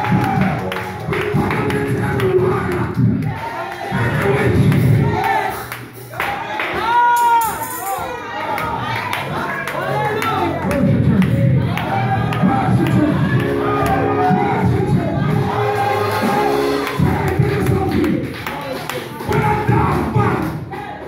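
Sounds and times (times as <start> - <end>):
man preaching through microphone: 0.0 - 3.3, 3.9 - 5.1, 9.6 - 20.7
church music with sustained chords: 0.0 - 6.7, 7.6 - 20.2
congregation calling out: 0.0 - 21.0.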